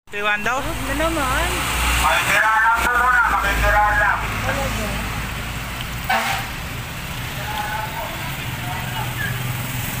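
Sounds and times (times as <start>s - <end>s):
vehicle engines humming: 0.1s - 10.0s.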